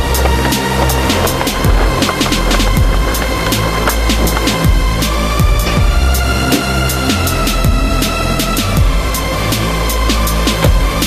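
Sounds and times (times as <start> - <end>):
sliding bass notes: 0.0 - 11.0.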